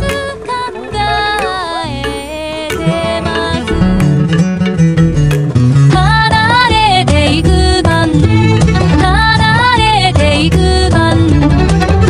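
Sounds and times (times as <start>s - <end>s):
melodic music with steady bass: 0.0s - 10.8s.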